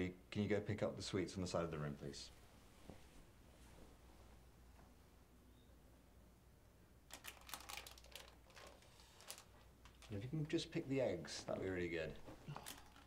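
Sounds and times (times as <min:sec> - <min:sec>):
plastic packet crinkling: 0:07.1 - 0:10.3, 0:12.5 - 0:13.0.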